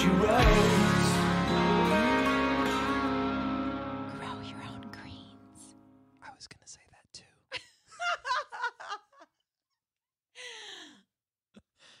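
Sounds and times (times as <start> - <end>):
whispery speech: 4.1 - 7.5.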